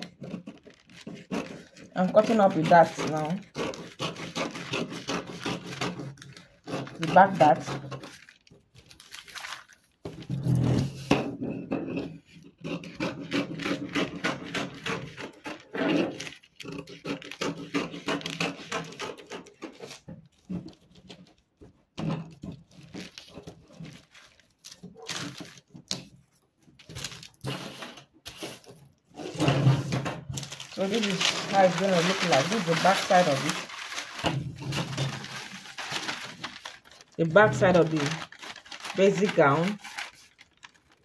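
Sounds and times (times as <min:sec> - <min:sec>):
scissors snipping paper: 0:00.0 - 0:08.4, 0:12.6 - 0:20.1, 0:30.4 - 0:41.0
paper rustling and crackling: 0:00.0 - 0:11.0, 0:13.1 - 0:21.8, 0:22.4 - 0:41.0.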